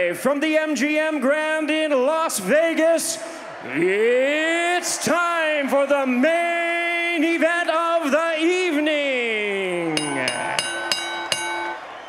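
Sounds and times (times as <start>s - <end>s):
man's amplified voice: 0.0s - 10.6s
boxing ring bell strikes: 10.0s - 11.8s.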